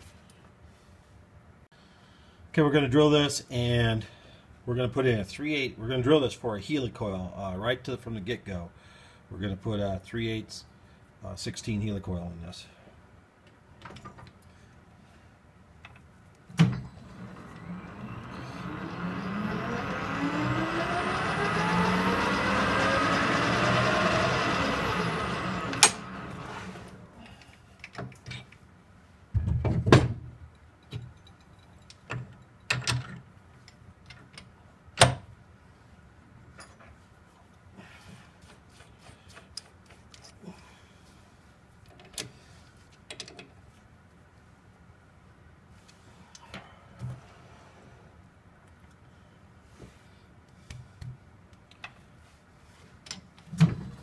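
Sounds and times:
spindle stopping click: 0:16.6 - 0:27.0
lathe spindle whining: 0:16.7 - 0:27.2.

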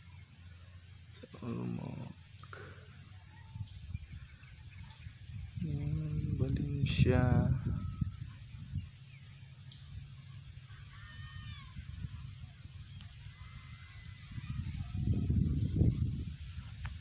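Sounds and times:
faint bird calls: 0:00.0 - 0:17.0
wind rumble on microphone: 0:00.0 - 0:17.0.

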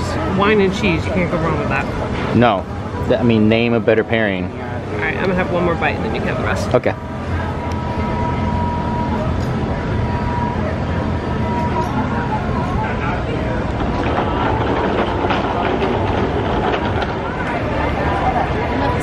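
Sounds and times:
vehicle rumbling: 0:00.0 - 0:19.0.

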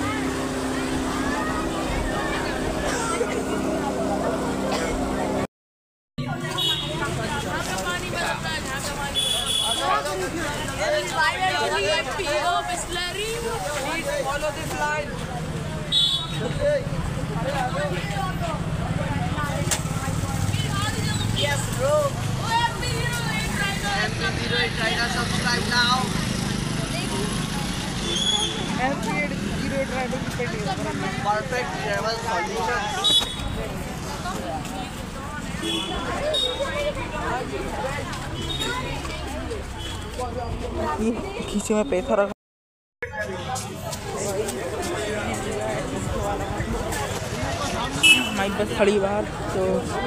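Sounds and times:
water rushing along hull: 0:00.0 - 0:05.4
low rumble of street traffic: 0:00.0 - 0:05.5, 0:06.2 - 0:42.3, 0:43.0 - 0:50.0
men talking and calling out: 0:00.0 - 0:05.5, 0:06.2 - 0:41.5, 0:43.0 - 0:50.0
motorboat engine droning: 0:00.0 - 0:05.5.

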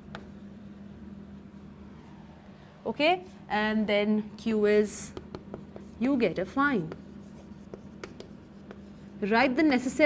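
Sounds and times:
chalk tapping: 0:00.0 - 0:01.4, 0:05.0 - 0:09.4
chalk scratching on chalkboard: 0:00.0 - 0:01.5, 0:05.0 - 0:09.4.

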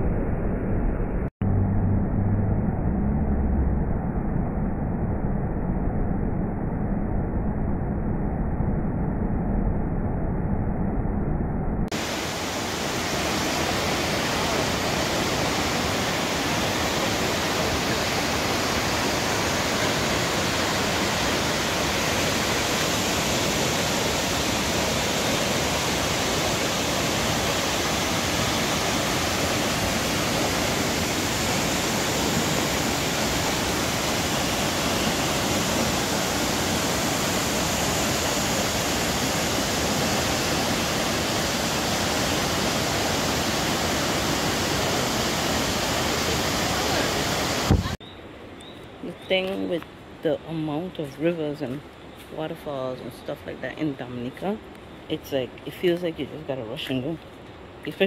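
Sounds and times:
waterfall rushing: 0:11.9 - 0:48.0.

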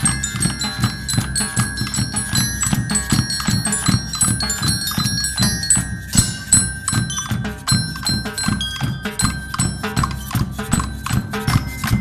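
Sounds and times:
snare and bass drums: 0:00.0 - 0:12.0
thin ringing metallic notes: 0:00.0 - 0:12.0.

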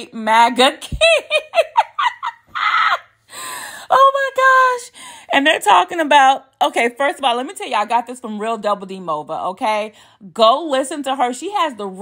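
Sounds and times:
woman laughing hard: 0:00.9 - 0:03.2.

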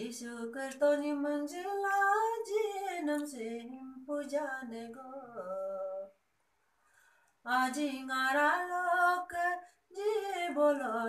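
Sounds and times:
woman singing unaccompanied: 0:00.0 - 0:06.2, 0:07.4 - 0:11.0.

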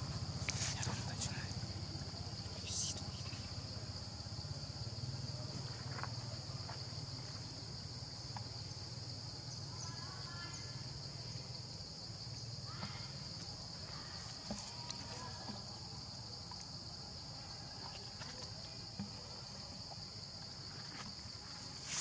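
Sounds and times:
high-pitched insect drone: 0:00.0 - 0:17.5.

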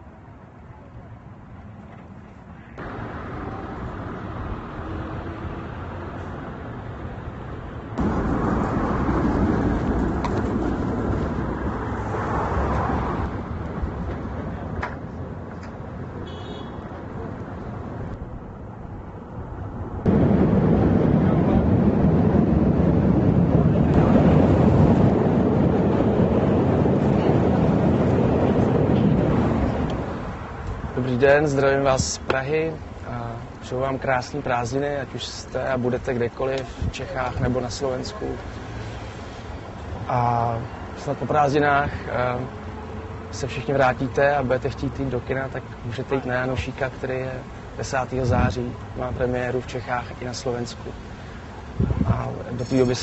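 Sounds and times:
street traffic: 0:00.0 - 0:53.0.

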